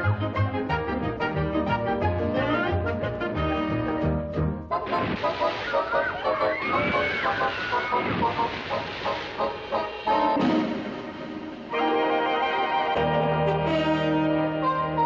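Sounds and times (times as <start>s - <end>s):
brassy background music: 0.0s - 6.4s, 8.3s - 15.0s
loud rushing noise: 4.9s - 12.0s.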